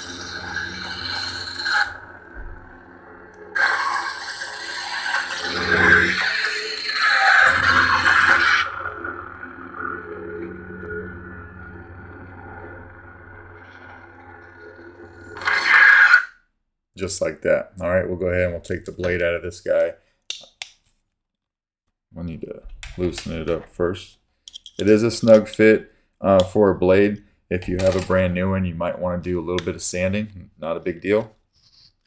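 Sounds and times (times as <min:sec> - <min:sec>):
lightsaber blade hum: 0:00.0 - 0:16.3.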